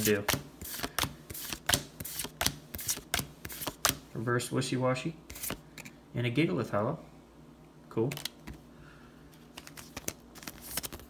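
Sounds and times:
plastic card sleeve crackling: 9.4s - 11.0s.

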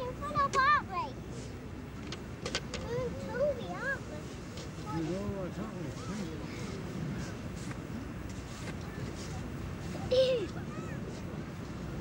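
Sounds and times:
faint sea surf: 0.0s - 12.0s.

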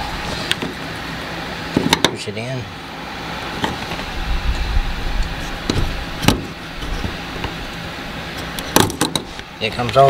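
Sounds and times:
low rumble: 4.0s - 6.2s.

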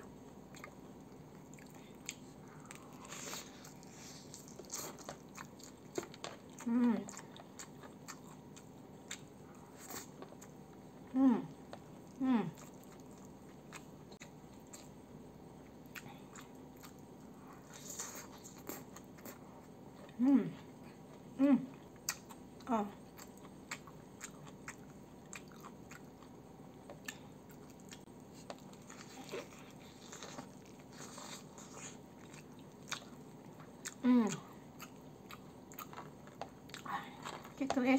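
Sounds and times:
close chewing with crunches: 0.1s - 37.9s
person humming mm: 6.6s - 7.2s, 11.1s - 11.6s, 12.2s - 12.6s, 20.2s - 20.6s, 21.4s - 21.8s, 34.0s - 34.5s.

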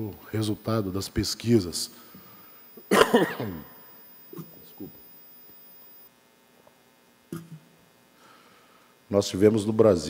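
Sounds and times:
thin high whine: 0.0s - 9.0s
faint electrical hum: 0.0s - 10.0s.

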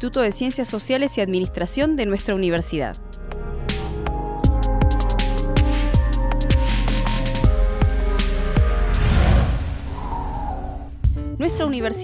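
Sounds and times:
electronic music: 3.0s - 9.0s
deep rumble: 8.6s - 11.2s
electronic whoosh: 8.8s - 11.0s.

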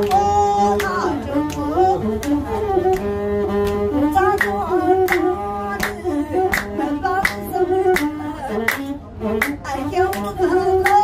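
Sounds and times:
woman singing: 0.0s - 2.7s, 4.0s - 11.0s
bowed fiddle: 0.0s - 11.0s
sharp hand claps: 0.0s - 11.0s.

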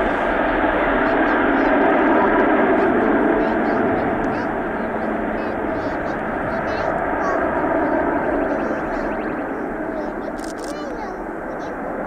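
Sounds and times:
jet engines roaring at takeoff: 0.0s - 12.0s.

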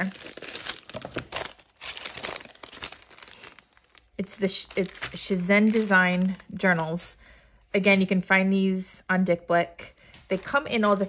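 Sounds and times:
plastic packaging crinkling: 0.0s - 7.2s, 10.3s - 11.0s.

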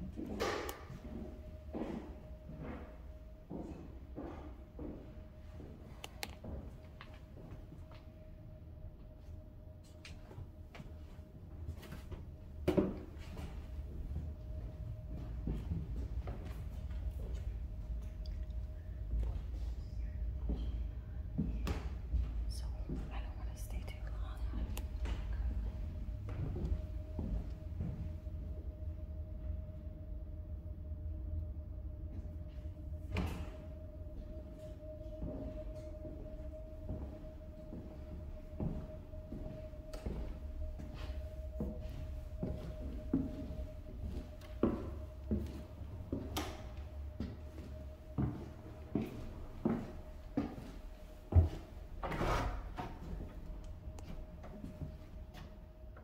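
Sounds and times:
person whispering: 22.5s - 25.0s.

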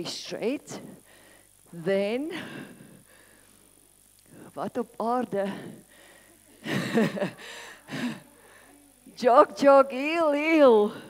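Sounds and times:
woman laughing and talking: 6.4s - 10.9s.

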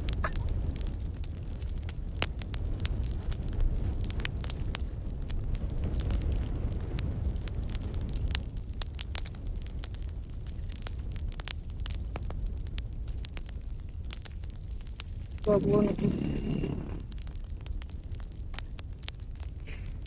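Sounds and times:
sharp clicks and crackles: 15.0s - 18.7s
steady low rumble: 15.4s - 17.8s.

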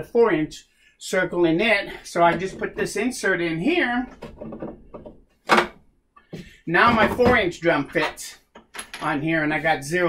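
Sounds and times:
wooden insert knocking and scraping: 2.2s - 3.1s, 4.0s - 8.7s.

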